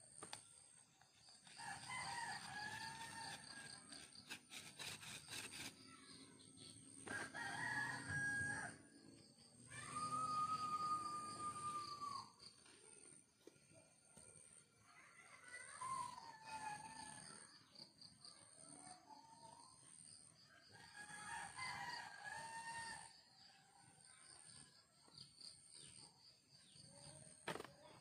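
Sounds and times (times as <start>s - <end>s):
roosters crowing: 7.1s - 8.8s, 9.7s - 12.3s.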